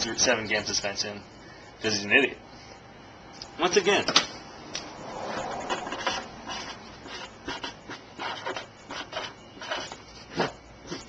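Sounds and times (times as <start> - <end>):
marker writing on whiteboard: 5.3 - 11.0.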